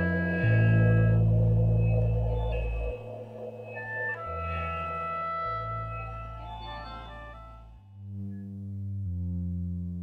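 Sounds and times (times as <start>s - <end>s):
low drone chord: 0.0s - 9.3s.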